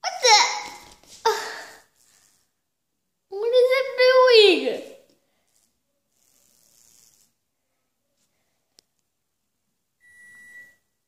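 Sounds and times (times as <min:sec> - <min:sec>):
high-pitched electronic beep: 0:10.0 - 0:10.8.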